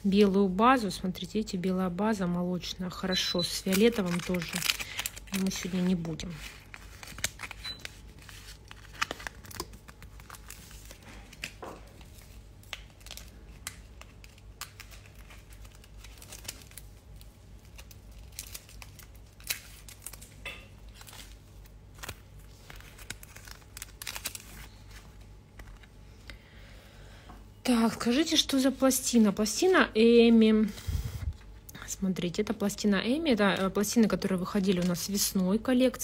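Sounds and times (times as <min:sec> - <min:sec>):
crinkling rustles: 0:03.5 - 0:26.0, 0:33.4 - 0:35.4.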